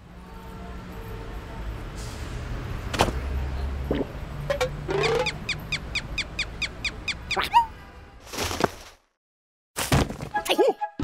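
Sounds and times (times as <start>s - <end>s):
cartoon squeaks: 4.9s - 7.7s
cartoon chirps: 7.1s - 7.7s.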